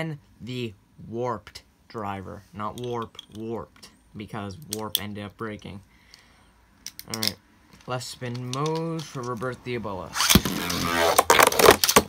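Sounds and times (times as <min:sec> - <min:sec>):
spinning top launcher ripping: 0:10.1 - 0:12.0.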